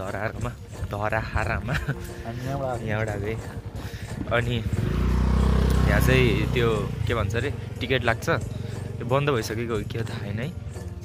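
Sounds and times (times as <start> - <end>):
motorcycle engine running: 1.8 - 11.0.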